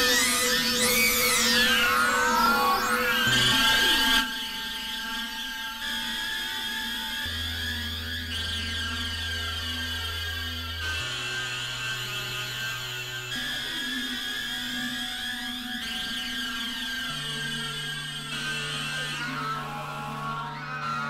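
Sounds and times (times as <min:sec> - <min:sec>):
sustained synthesizer drone tones: 0:00.0 - 0:21.0.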